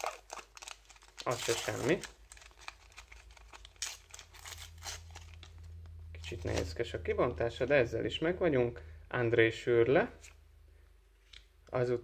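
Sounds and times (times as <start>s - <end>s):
sticker packet ripping and crinkling: 0.0s - 6.7s.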